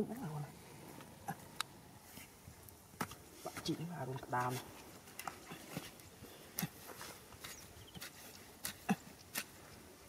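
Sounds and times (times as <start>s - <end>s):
hands digging in wet mud: 4.4s - 9.9s.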